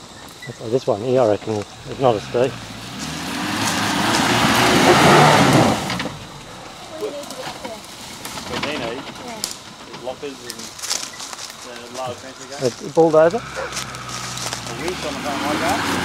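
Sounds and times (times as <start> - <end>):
indistinct voices: 0.0 - 16.0
car engine revving under load: 1.2 - 10.0, 13.0 - 16.0.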